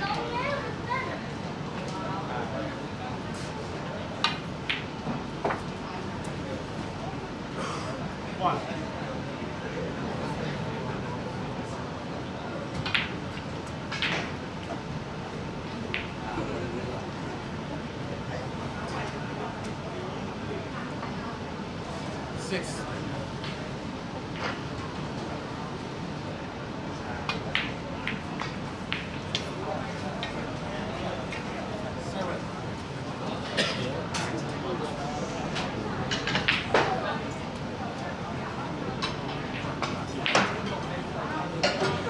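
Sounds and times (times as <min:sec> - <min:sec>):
crowd murmur: 0:00.0 - 0:42.0.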